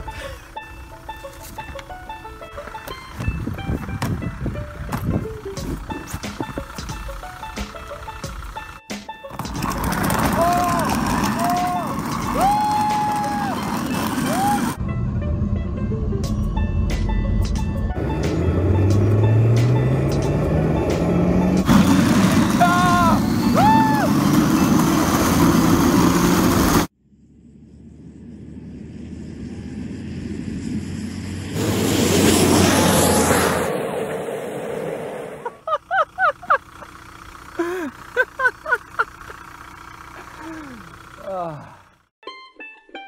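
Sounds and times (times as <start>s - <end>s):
road noise: 0.0s - 42.2s
car engine accelerating: 3.2s - 42.1s
person whooping: 10.3s - 14.8s, 22.6s - 24.2s, 40.4s - 41.8s
vehicle passing by: 18.0s - 35.7s
people laughing: 35.4s - 36.6s, 37.6s - 39.4s.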